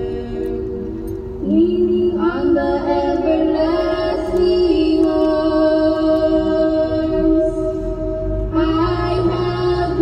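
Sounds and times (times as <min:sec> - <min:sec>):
low steady rumble: 0:00.0 - 0:10.0
person singing a hymn: 0:00.0 - 0:10.0.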